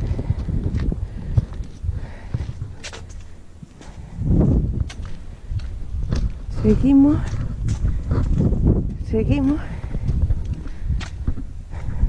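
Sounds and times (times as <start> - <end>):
footsteps on paving: 0.0 - 12.0
wind rumbling on microphone: 0.0 - 12.0.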